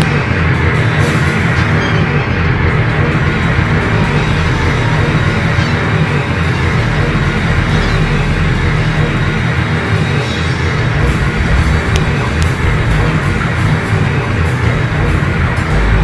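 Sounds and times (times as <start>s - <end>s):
thrash metal instrumental: 0.0s - 16.0s.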